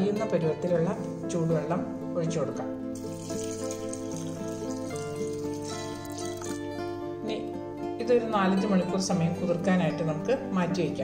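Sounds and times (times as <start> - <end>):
background music: 0.0 - 11.0
water pouring into a bowl: 3.0 - 6.8.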